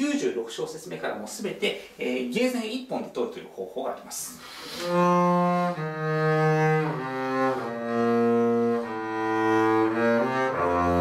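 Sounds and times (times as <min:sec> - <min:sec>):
bowed double bass notes: 0:04.8 - 0:11.0.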